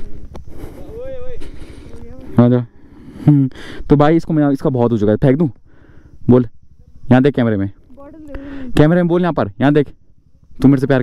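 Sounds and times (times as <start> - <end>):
people talking: 0.0 - 2.7, 6.3 - 9.9.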